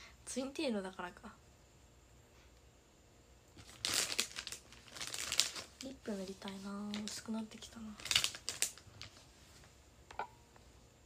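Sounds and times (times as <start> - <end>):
crinkling and rustling close to microphone: 3.6 - 9.8.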